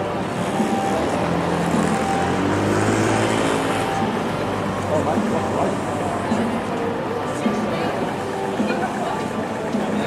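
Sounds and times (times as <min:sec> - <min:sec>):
vehicle engine hum: 0:00.0 - 0:09.8
passers-by voices: 0:00.0 - 0:10.0
road traffic rumble: 0:00.0 - 0:10.0.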